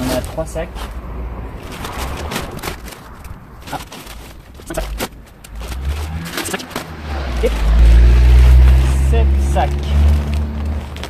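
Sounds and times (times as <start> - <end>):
plastic sacks rustling and crunching: 0.0 - 9.0, 9.6 - 11.0
sharp crackles: 1.6 - 8.9, 9.8 - 11.0.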